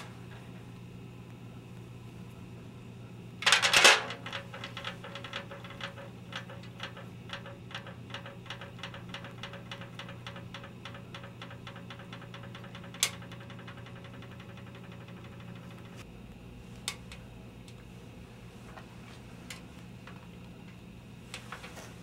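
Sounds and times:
rapid regular ticking: 0:04.2 - 0:16.1.

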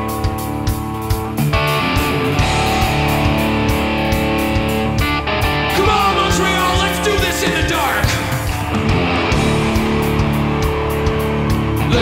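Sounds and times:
bass guitar: 0:00.0 - 0:12.0
drum beat with cymbals: 0:00.0 - 0:12.0
electric guitar chords: 0:00.0 - 0:12.0.

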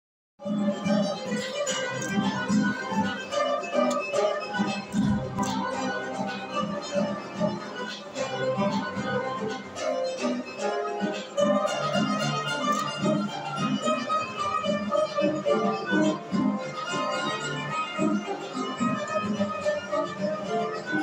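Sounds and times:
bowed fiddle melody: 0:00.4 - 0:21.0
plucked lute: 0:00.4 - 0:21.0
drum keeping steady beat: 0:04.6 - 0:06.1.

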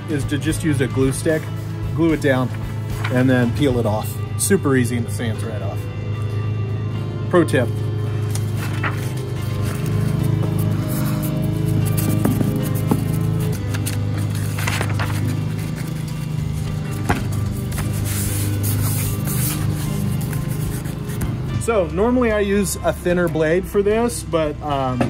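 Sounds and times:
background music with low notes: 0:00.0 - 0:25.0.

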